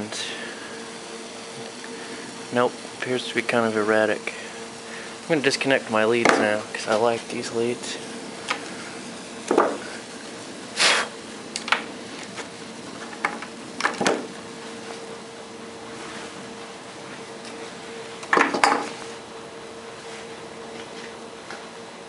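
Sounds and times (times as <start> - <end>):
low steady hum: 0.0 - 22.0
venting battery hiss: 0.0 - 22.0.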